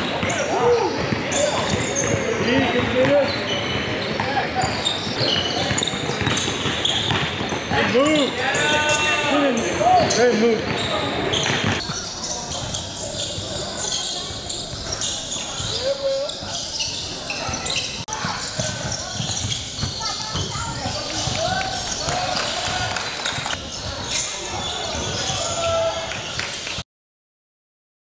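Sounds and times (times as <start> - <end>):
players' voices: 0.0 - 26.4
basketballs bouncing on wooden court: 0.1 - 8.3, 9.8 - 22.9.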